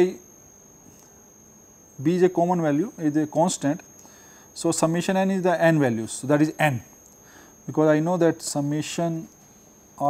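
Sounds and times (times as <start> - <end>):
faint high-pitched whine: 0.0 - 10.0
man speaking: 2.0 - 3.8, 4.6 - 6.9, 7.7 - 9.3.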